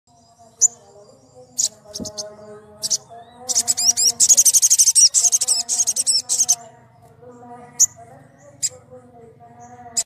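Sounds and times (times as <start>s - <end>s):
bird high-pitched chirps: 0.1s - 8.9s, 9.6s - 10.0s.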